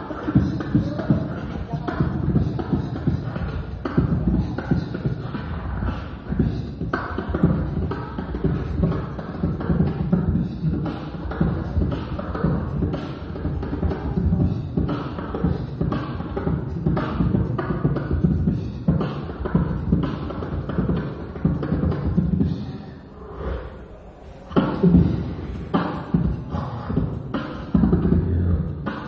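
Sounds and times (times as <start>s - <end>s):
beatboxing into microphone: 0.0s - 29.0s.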